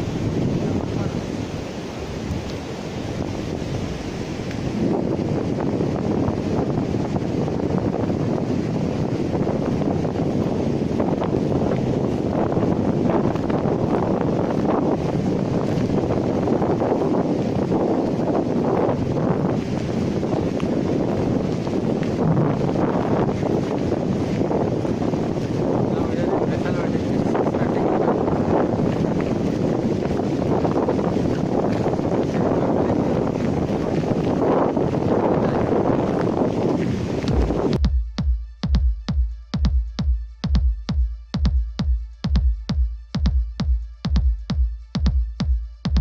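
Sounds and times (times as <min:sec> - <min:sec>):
surf breaking on beach: 0:00.0 - 0:37.8
wind buffeting microphone: 0:00.0 - 0:38.1.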